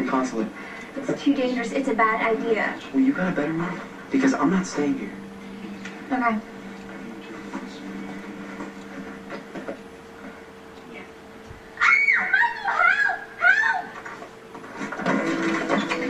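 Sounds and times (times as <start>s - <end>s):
steady electrical hum: 0.0s - 16.0s
music: 1.7s - 9.6s, 15.0s - 16.0s
woman crying out on tv: 11.8s - 14.0s.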